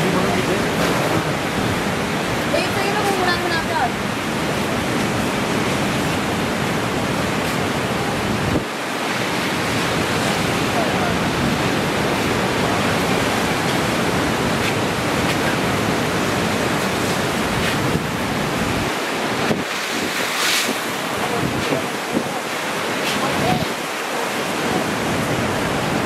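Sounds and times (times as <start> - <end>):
ocean surf rushing: 0.0 - 26.0
wind blowing on microphone: 0.0 - 26.0.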